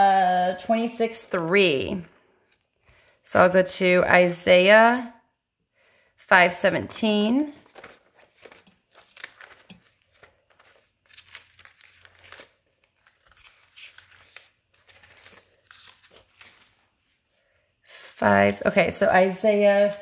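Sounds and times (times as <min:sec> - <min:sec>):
book pages flipping: 0:02.4 - 0:03.0, 0:07.5 - 0:17.3, 0:19.8 - 0:20.0.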